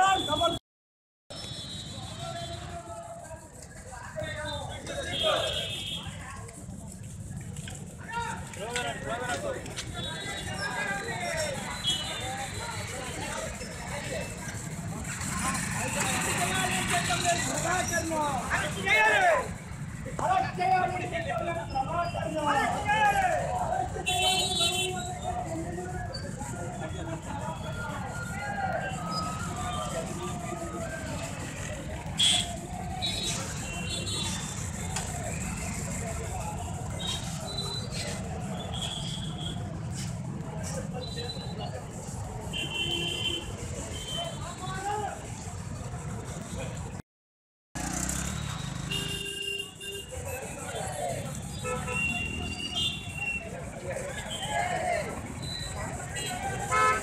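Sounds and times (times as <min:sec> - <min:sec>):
street traffic rumble: 0:01.3 - 0:47.0, 0:47.7 - 0:57.0
voices talking: 0:01.4 - 0:47.0, 0:47.9 - 0:57.0.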